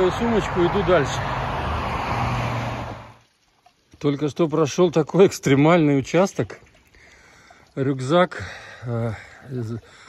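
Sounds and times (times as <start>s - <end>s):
road traffic rushing: 0.0s - 3.2s.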